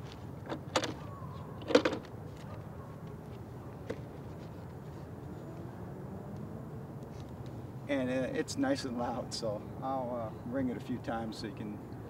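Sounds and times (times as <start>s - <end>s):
sharp plastic clacks: 1.6s - 2.6s.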